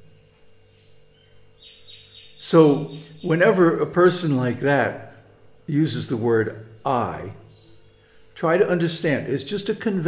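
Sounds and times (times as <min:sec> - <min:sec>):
bird chirps: 0:00.0 - 0:09.6
faint steady hum: 0:00.0 - 0:10.0.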